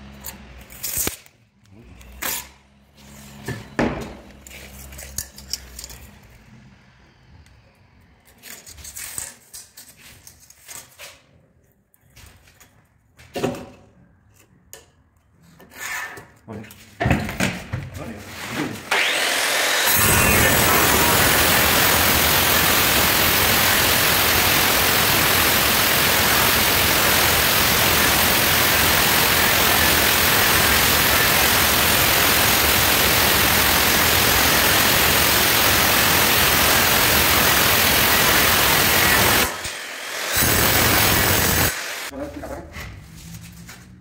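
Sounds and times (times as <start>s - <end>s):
angle grinder cutting stone: 18.9s - 42.1s.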